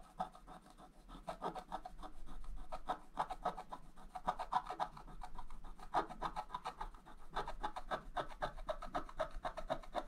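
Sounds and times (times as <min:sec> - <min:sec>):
stylus scraping scratch paper: 0:00.0 - 0:10.0.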